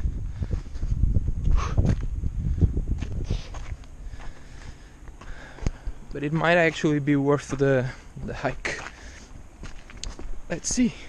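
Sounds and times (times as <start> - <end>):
footsteps on paved path: 0.0 - 2.2, 2.9 - 11.0
low rumble on microphone: 0.0 - 6.7.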